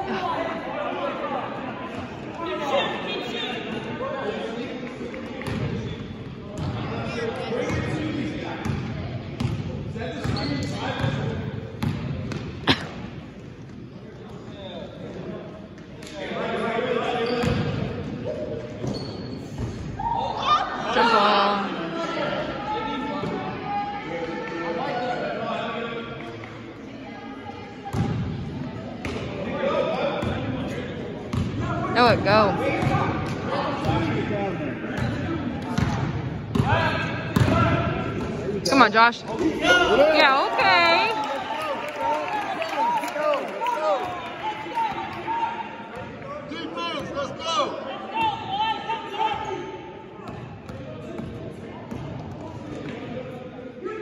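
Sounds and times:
basketball bouncing on gym floor: 0:09.4 - 0:09.6.

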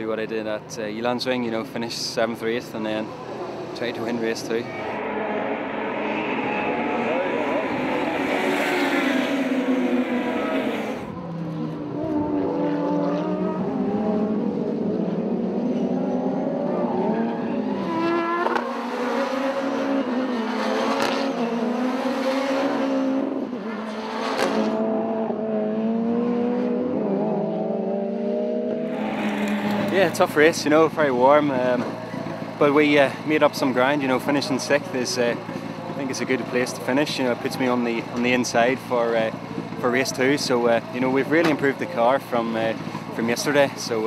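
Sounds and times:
race car engines revving: 0:01.6 - 0:44.0.

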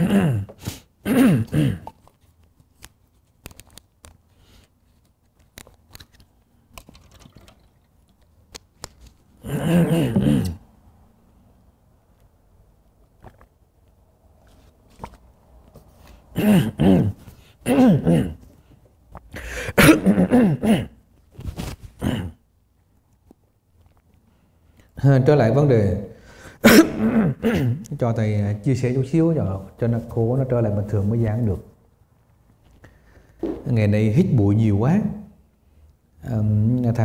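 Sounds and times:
man clearing his throat: 0:00.0 - 0:02.0, 0:09.4 - 0:10.7, 0:16.3 - 0:18.4, 0:19.5 - 0:21.0, 0:22.0 - 0:22.4, 0:26.6 - 0:27.9
short breath: 0:19.4 - 0:19.8, 0:26.2 - 0:26.6, 0:32.8 - 0:33.4.

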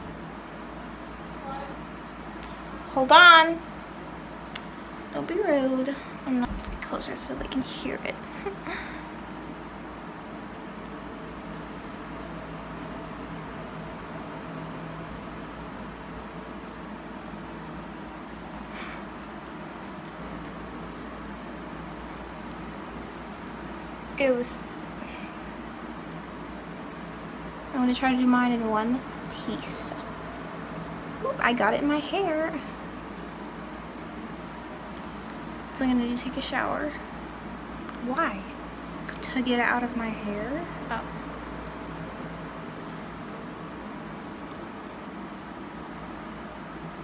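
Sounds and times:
room noise hiss: 0:00.0 - 0:47.0.

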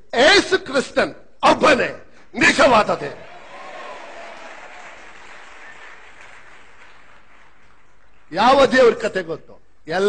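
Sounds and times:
audience applauding: 0:03.2 - 0:08.7.

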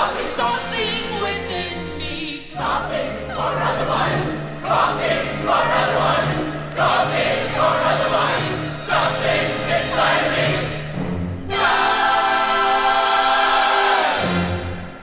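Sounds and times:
chorus singing: 0:00.0 - 0:15.0
orchestra playing: 0:00.0 - 0:15.0.

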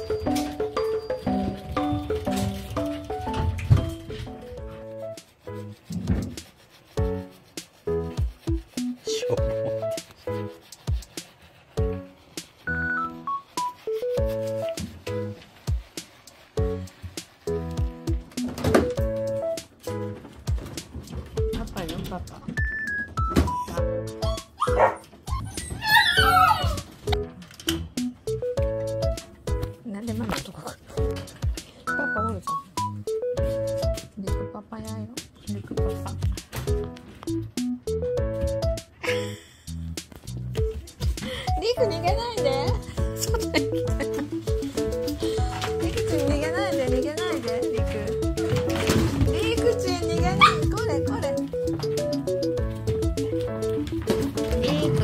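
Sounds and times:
background music with steady beat: 0:00.0 - 0:55.0
dog whining: 0:24.2 - 0:27.1, 0:50.4 - 0:50.8
dog barking: 0:24.6 - 0:25.0, 0:50.4 - 0:50.7.

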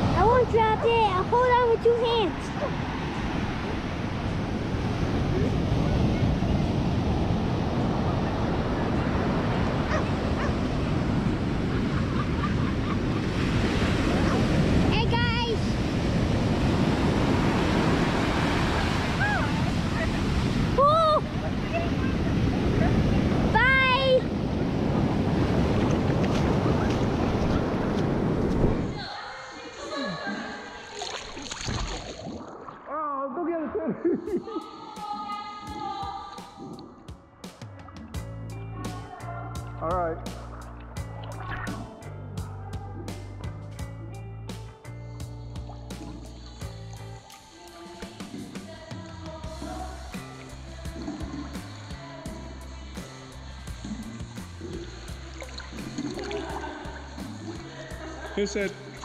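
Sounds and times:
wind on microphone: 0:00.0 - 0:29.1
ocean surf breaking: 0:00.0 - 0:29.4
quiet music: 0:34.0 - 0:59.0.

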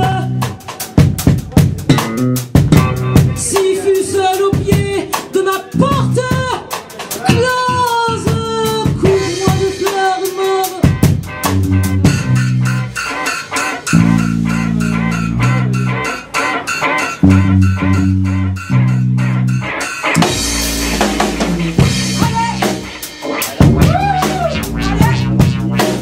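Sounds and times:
bass guitar held notes: 0:00.0 - 0:03.5, 0:11.0 - 0:13.2, 0:13.9 - 0:26.0
drum kit beat: 0:00.0 - 0:26.0
guitar: 0:00.0 - 0:26.0.

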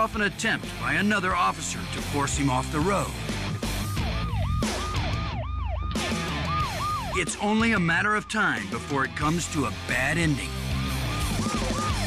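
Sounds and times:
police siren yelping: 0:02.8 - 0:08.9, 0:10.6 - 0:12.0.

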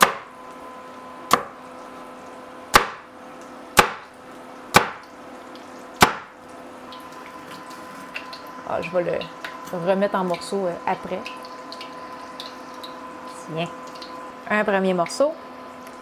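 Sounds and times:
cleaver chopping onto wooden board: 0:00.0 - 0:00.3, 0:01.3 - 0:01.6, 0:02.7 - 0:03.0, 0:03.8 - 0:04.1, 0:04.7 - 0:05.0, 0:06.0 - 0:06.3.

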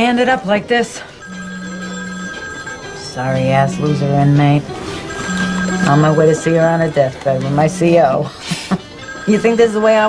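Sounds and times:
phone ringing: 0:01.2 - 0:08.2, 0:08.8 - 0:10.0.

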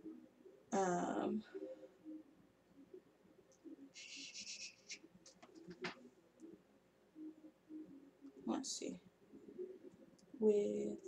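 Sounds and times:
scratchy rustle of makeup brush: 0:04.0 - 0:05.8.

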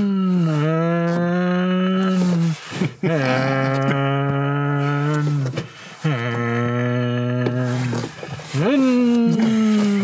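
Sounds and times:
man humming low notes: 0:00.0 - 0:10.0.

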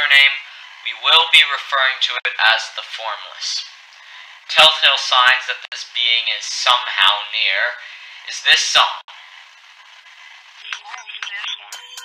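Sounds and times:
rap song through radio: 0:00.0 - 0:03.8, 0:04.4 - 0:09.1, 0:10.1 - 0:12.0.

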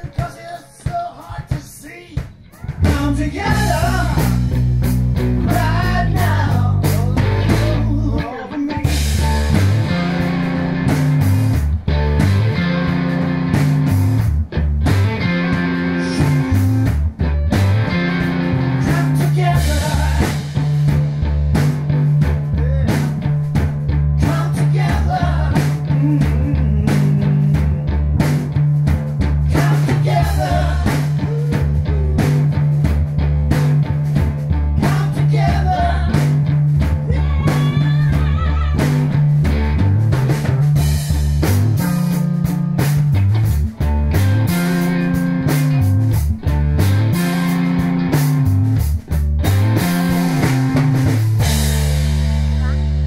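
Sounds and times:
person singing: 0:00.0 - 0:04.4, 0:05.4 - 0:08.9, 0:17.2 - 0:17.9, 0:18.8 - 0:20.4, 0:24.2 - 0:27.9, 0:29.5 - 0:32.5, 0:34.8 - 0:36.3, 0:37.0 - 0:39.1
drum kit: 0:00.0 - 0:53.0
electric bass: 0:02.6 - 0:53.0
electric guitar: 0:02.6 - 0:53.0.

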